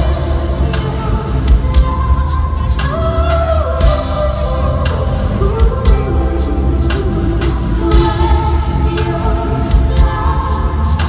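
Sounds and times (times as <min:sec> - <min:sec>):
deep bass: 0:00.0 - 0:11.0
steady drum beat: 0:00.0 - 0:11.0
women singing in harmony: 0:00.0 - 0:11.0.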